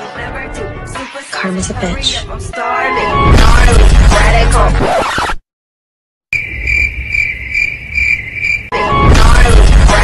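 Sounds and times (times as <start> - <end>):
loud hip-hop music: 0.0 - 5.2, 8.7 - 10.0
cricket chirping: 6.3 - 8.7.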